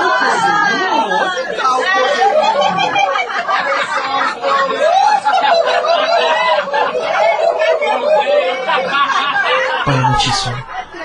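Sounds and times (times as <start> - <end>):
high-pitched voices chattering: 9.9 - 11.0.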